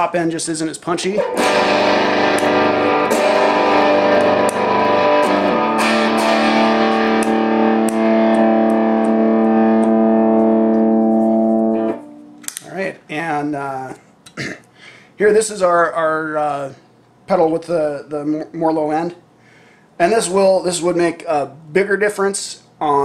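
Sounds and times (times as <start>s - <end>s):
distorted electric guitar chords: 1.2s - 12.6s.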